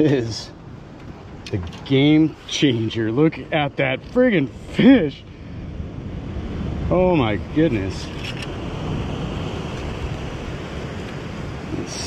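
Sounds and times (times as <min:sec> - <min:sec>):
ocean surf: 0:00.0 - 0:12.0
wind on microphone: 0:00.0 - 0:12.0.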